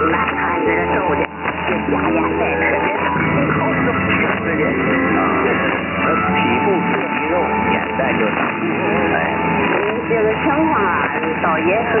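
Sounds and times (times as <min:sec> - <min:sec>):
am radio music and voices: 0:00.0 - 0:12.0.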